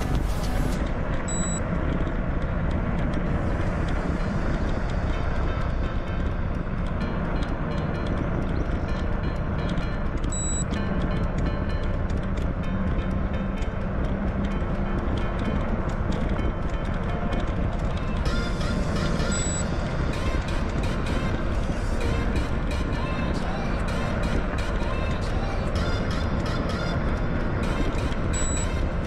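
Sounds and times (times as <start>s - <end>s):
wind rumble on microphone: 0.0s - 29.0s.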